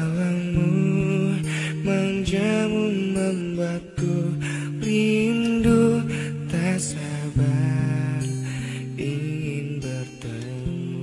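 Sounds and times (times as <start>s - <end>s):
acoustic guitar pop music: 0.0s - 11.0s.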